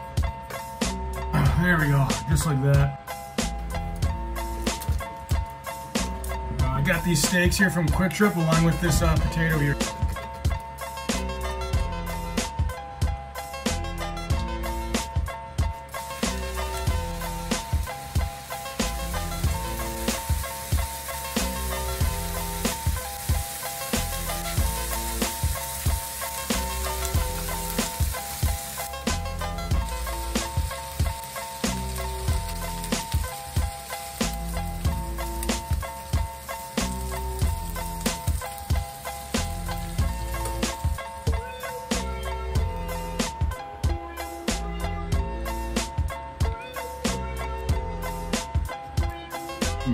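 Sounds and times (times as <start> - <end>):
background music with steady beat: 0.0 - 49.9
beef sizzling in a skillet: 3.2 - 6.3, 15.9 - 43.4.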